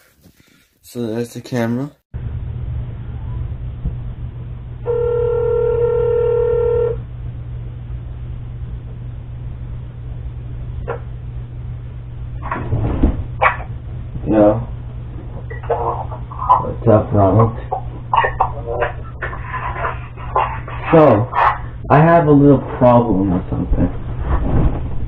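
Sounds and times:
steady low hum: 2.2s - 25.0s
telephone ringback tone: 4.9s - 7.0s
voices: 14.2s - 24.0s.

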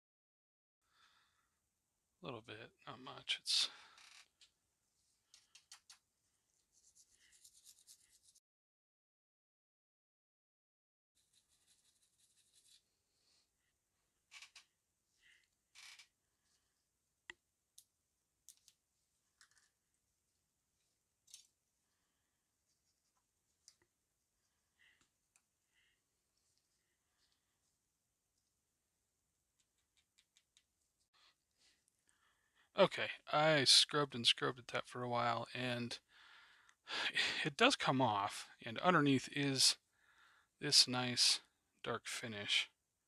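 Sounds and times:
small clicks and taps: 29.6s - 30.8s.

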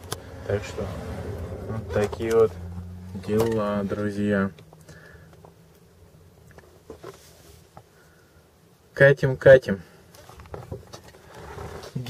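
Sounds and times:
vehicle engine and tyre rumble: 0.0s - 8.0s.

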